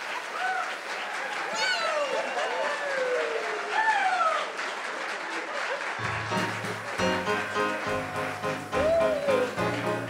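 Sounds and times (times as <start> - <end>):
audience whoops: 0.0 - 4.7, 5.7 - 10.0
audience applauding: 0.0 - 10.0
band playing held chords: 6.0 - 10.0.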